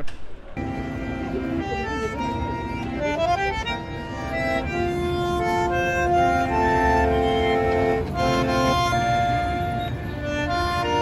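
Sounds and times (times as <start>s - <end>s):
bandoneon chords: 0.6s - 11.0s.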